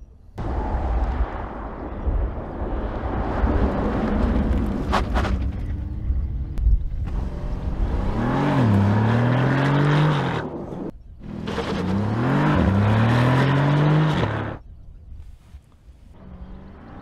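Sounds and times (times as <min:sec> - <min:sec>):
car accelerating hard: 0:07.0 - 0:14.6.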